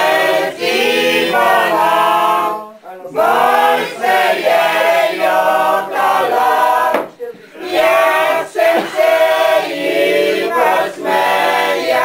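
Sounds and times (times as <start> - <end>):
group singing: 0.0 - 12.0.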